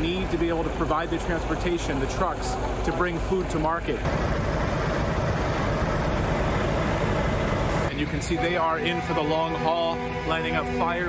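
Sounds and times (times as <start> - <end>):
heavy vehicle engines rumbling: 0.0 - 11.0.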